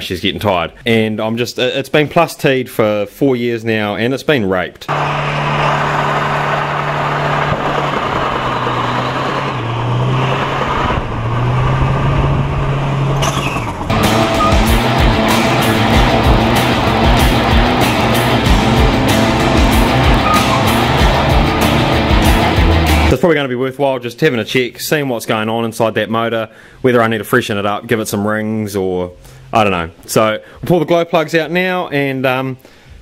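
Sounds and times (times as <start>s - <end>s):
diesel engine at high revs: 4.9s - 23.1s
fast even beat: 13.9s - 23.2s
music: 13.9s - 23.2s.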